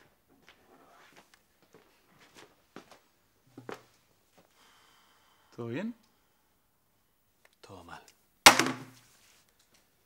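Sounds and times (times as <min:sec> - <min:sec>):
loud thud: 0:08.5 - 0:09.0.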